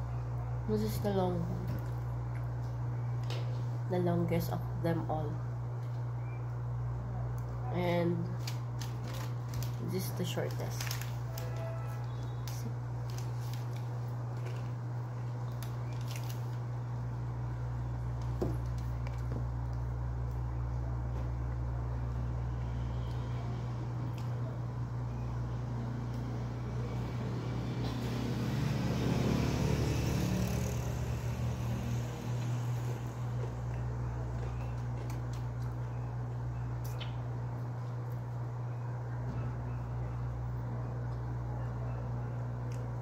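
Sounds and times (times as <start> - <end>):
steady low hum: 0.0 - 43.0
muffled background noise: 32.5 - 43.0.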